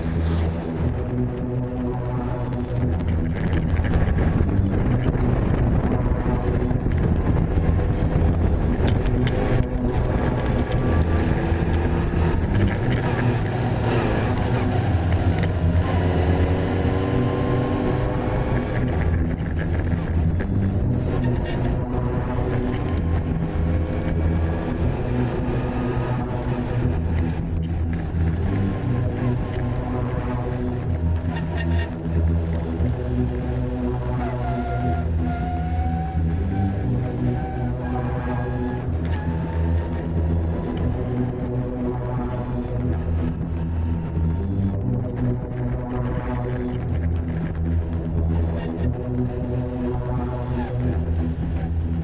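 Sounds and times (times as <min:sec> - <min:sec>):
background music: 0:00.0 - 0:52.0
car engine accelerating: 0:00.0 - 0:52.0.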